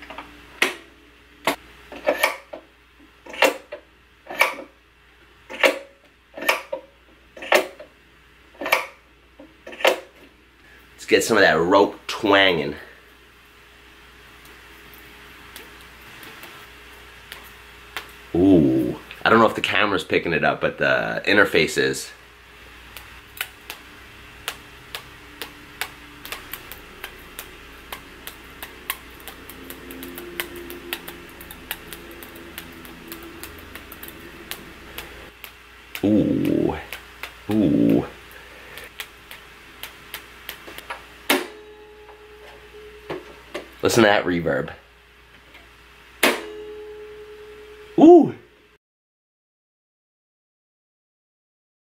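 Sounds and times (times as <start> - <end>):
low steady hum: 0.0 - 48.8
low ringing tone: 41.5 - 43.4, 46.4 - 48.1.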